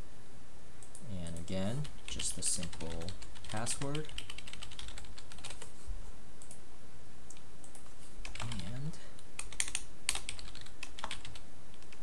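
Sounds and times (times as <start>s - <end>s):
steady low hum: 0.0s - 12.0s
keyboard typing: 0.9s - 5.7s, 7.3s - 8.7s, 9.4s - 12.0s.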